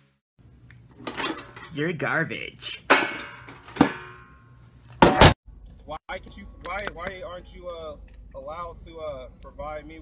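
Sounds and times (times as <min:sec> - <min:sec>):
metal trash can lid clanging: 0:01.0 - 0:01.7, 0:02.9 - 0:04.4.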